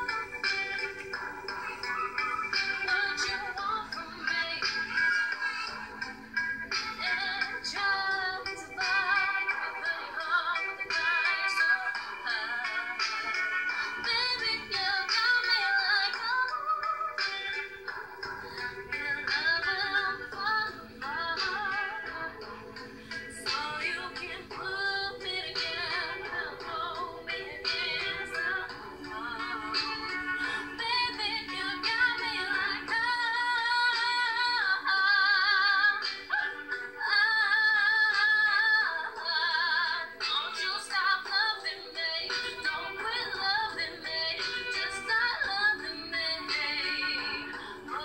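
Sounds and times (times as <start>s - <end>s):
backing music: 0.0s - 48.0s
woman singing with vibrato: 23.3s - 48.0s.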